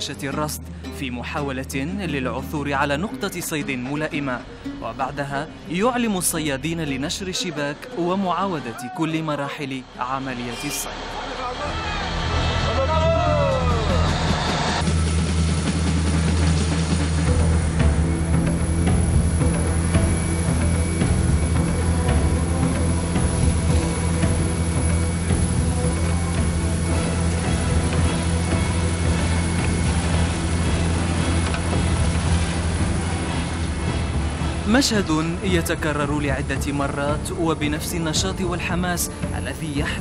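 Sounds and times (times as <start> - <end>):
background music: 0.0 - 40.0
boat engine droning: 1.9 - 40.0.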